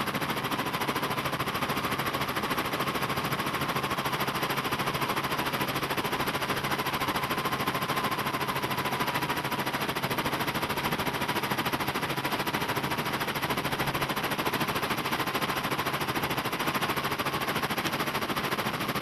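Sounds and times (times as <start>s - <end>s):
helicopter rotor chopping: 0.0s - 19.0s.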